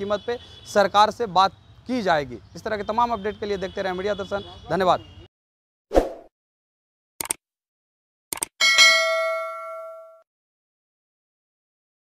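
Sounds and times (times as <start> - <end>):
bell-like notification ding: 8.6 - 10.3.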